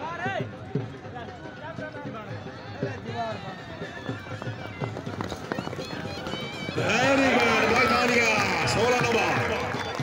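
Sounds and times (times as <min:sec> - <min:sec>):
galloping horse hoofbeats: 0:00.5 - 0:10.0
crowd calling: 0:03.2 - 0:10.0.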